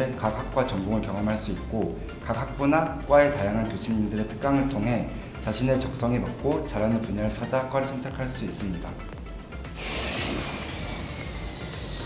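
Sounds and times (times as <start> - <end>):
airplane flyby whoosh: 9.5 - 12.0.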